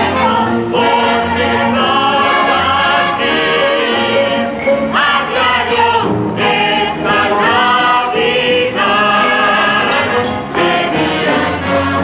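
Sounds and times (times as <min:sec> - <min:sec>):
musical theatre chorus singing: 0:00.0 - 0:12.0.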